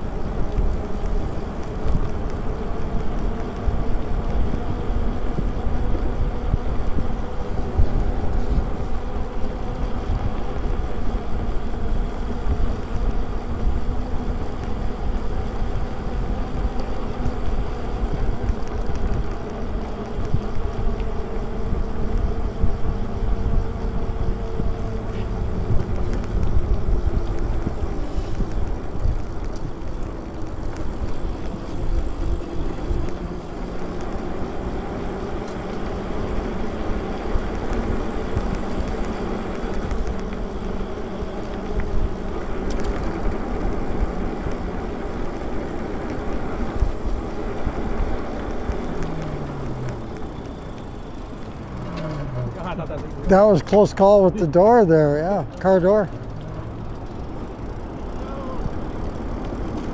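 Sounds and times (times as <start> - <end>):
e-bike tyre and drive hum: 0.0 - 59.9
wind rushing over microphone: 0.0 - 59.9.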